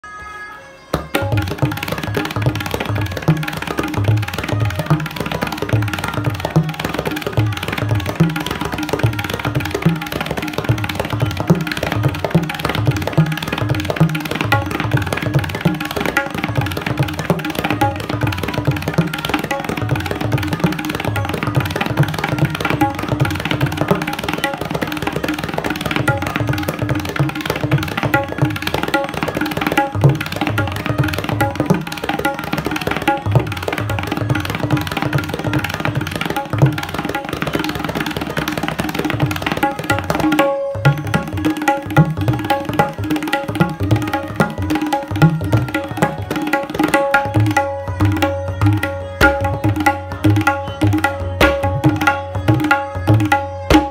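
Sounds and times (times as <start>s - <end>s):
tabla ringing strokes: 0.0s - 53.9s.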